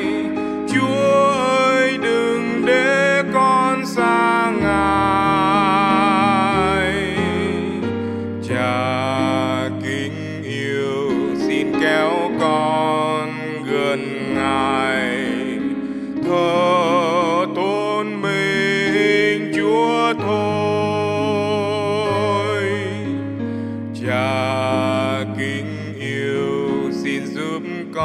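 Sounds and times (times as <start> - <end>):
person singing slow worship song: 0.0 - 28.0
sustained piano chords: 0.0 - 28.0.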